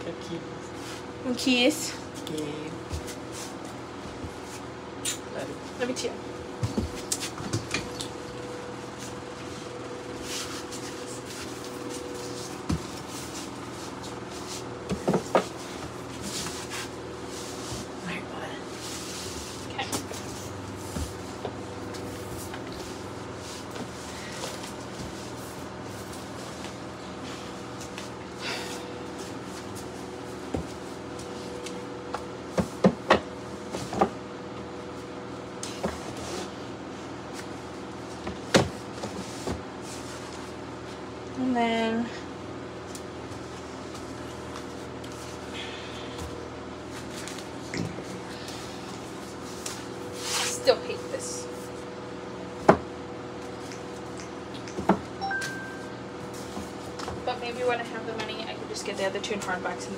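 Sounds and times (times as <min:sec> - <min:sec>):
low room hum: 0:00.0 - 0:59.9.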